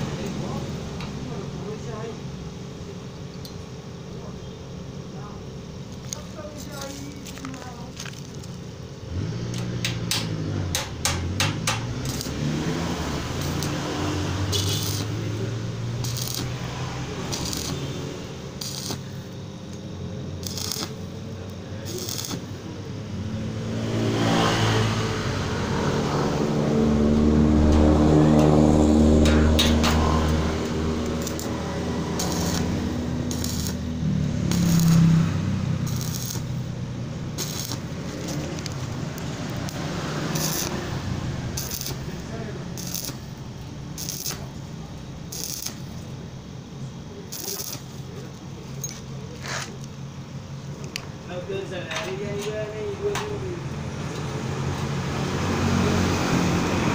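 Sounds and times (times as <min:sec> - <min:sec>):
engine humming: 0:00.0 - 0:56.9.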